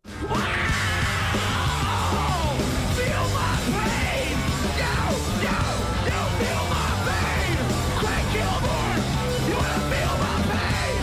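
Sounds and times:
electric guitar: 0.0 - 11.0
yelled vocals: 0.0 - 11.0
steady drum beat: 0.1 - 11.0.

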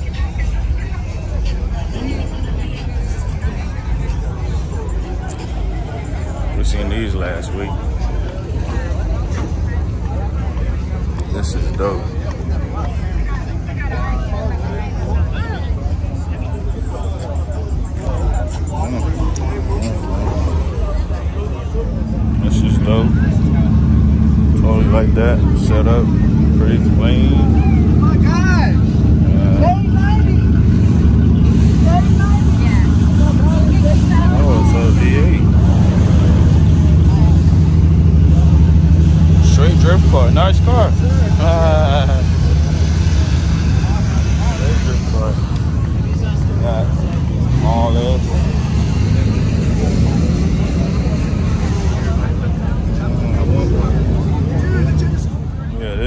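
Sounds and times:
engine idling loudly: 0.0 - 56.0
people talking: 0.0 - 56.0.

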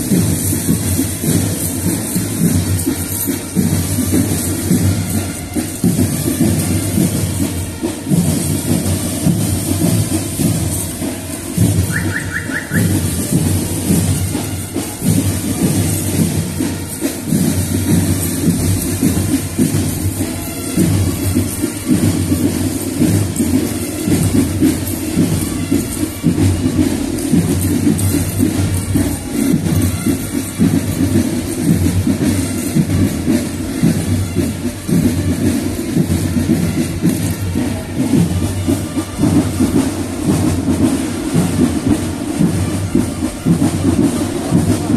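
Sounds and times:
heavy drum beat: 0.0 - 44.9
marching band playing: 0.0 - 44.9.

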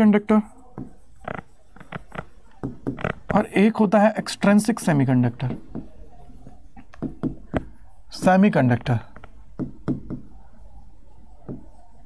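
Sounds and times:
chalk tapping on a blackboard: 0.7 - 3.5, 5.4 - 10.3, 11.4 - 12.0.

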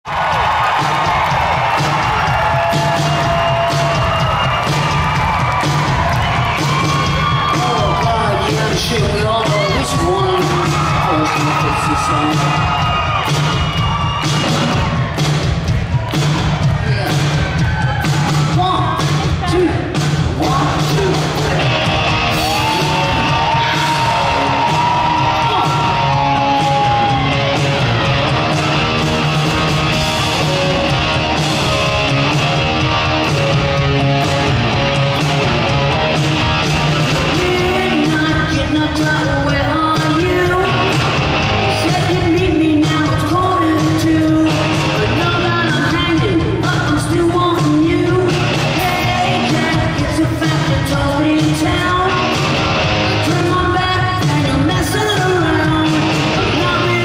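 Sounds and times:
crowd cheering and whooping: 0.0 - 18.8, 20.7 - 46.9
live rock band playing: 0.1 - 57.0.

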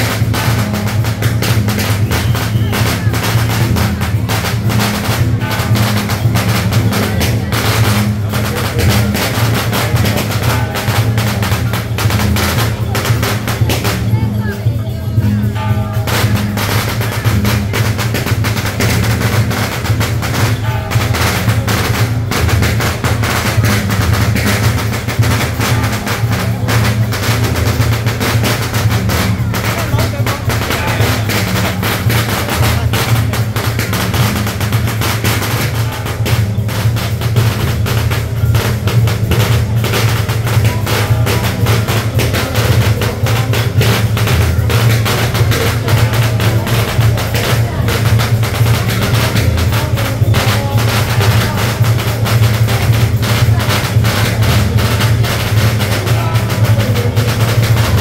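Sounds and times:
drums and metal percussion: 0.0 - 58.0.

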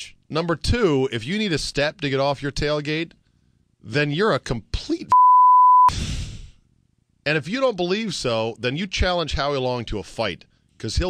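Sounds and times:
high censor bleep: 5.1 - 5.9.

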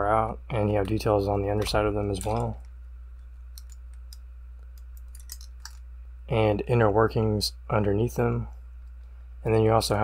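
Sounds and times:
steady low hum: 0.0 - 10.0
light clicks of plastic figure pieces: 1.6 - 2.7.

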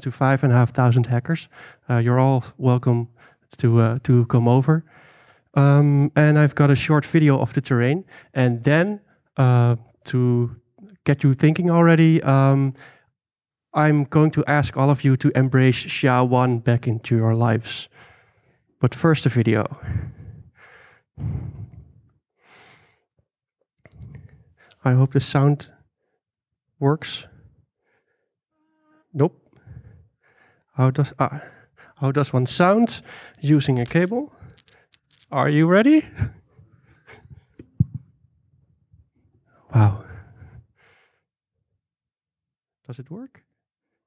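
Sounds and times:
faint breath: 4.9 - 5.5, 12.8 - 13.1, 17.9 - 18.7, 19.8 - 23.0, 29.5 - 30.7, 33.0 - 33.4
person exhaling: 19.8 - 22.9, 39.7 - 41.0
man exhaling into microphone: 21.2 - 22.0.

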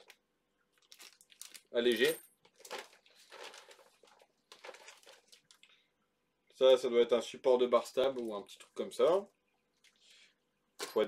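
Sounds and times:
plastic bag crinkling: 0.0 - 5.8.

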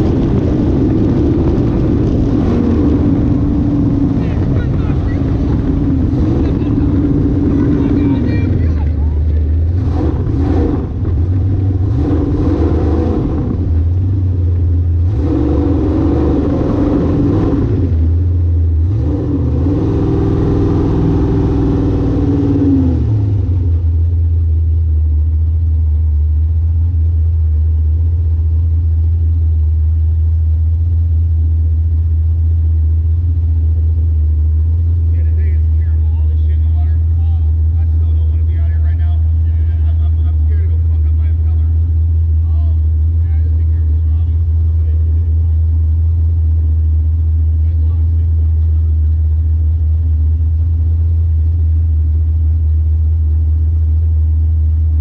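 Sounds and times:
jet boat engine: 0.0 - 53.6.

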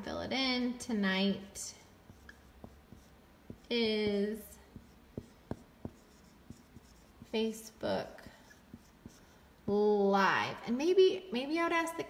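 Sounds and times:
marker tapping and stroking: 2.0 - 9.8.

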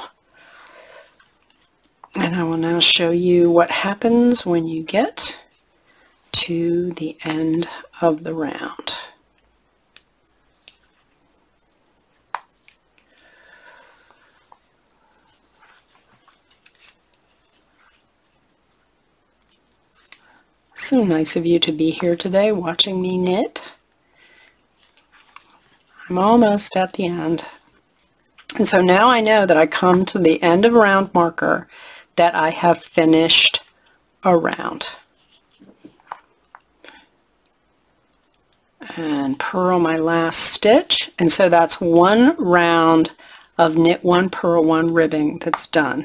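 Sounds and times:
yarn rubbing: 12.4 - 23.9, 24.6 - 31.0, 32.3 - 36.6.

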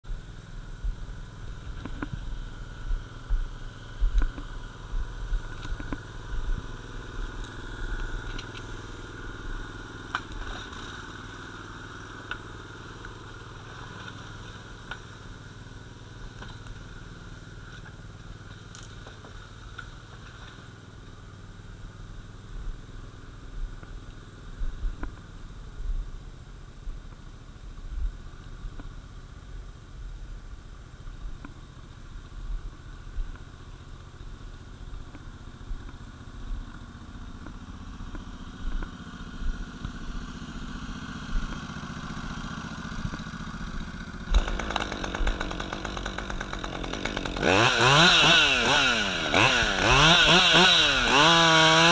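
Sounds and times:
small tracked vehicle engine running: 0.1 - 51.9
logs knocking and brush crackling: 1.4 - 15.2, 16.3 - 17.0, 17.6 - 20.7, 35.1 - 51.9.

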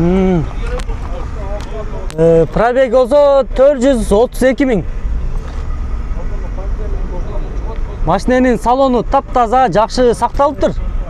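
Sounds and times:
man speaking: 0.0 - 4.9, 6.1 - 11.0
car engine idling: 0.0 - 11.0.

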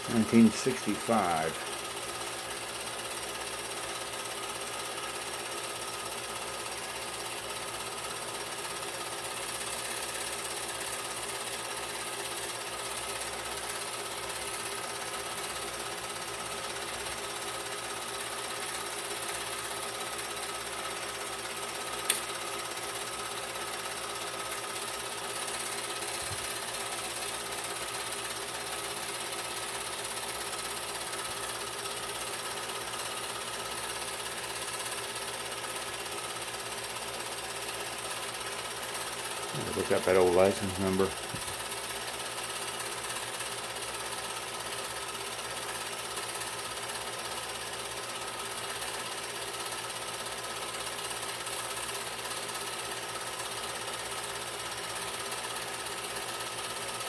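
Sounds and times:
film projector clattering: 0.0 - 57.0
sharp click: 22.0 - 22.3.

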